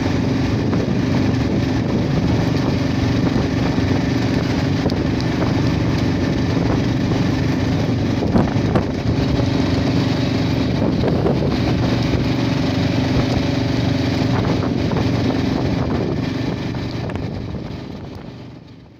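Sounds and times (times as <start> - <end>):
vehicle engine and road noise: 0.0 - 18.9.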